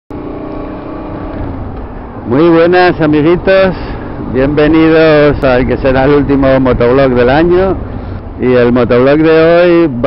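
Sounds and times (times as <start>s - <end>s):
motorcycle engine running: 0.1s - 8.2s
road and wind noise: 0.1s - 10.0s.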